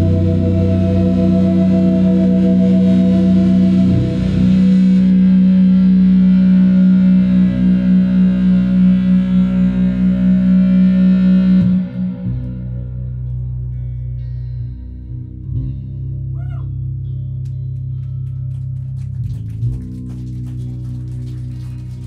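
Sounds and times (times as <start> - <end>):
distorted electric guitar drone: 0.0 - 22.0.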